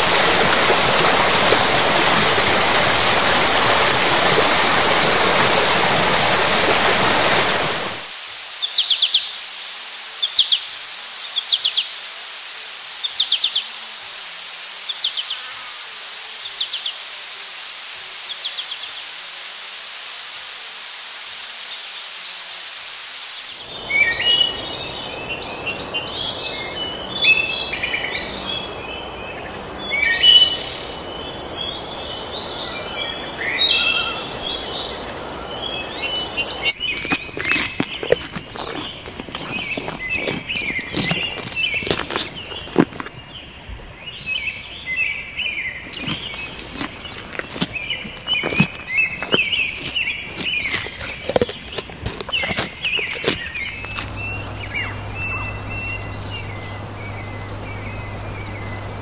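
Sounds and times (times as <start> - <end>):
insect drone: 0.0 - 28.3, 45.6 - 59.0
birds chirping: 23.6 - 59.0
open jeep driving: 53.5 - 59.0.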